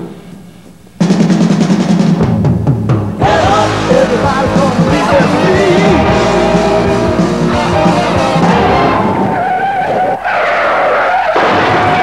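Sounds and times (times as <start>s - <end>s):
tyres squealing: 7.8s - 12.0s.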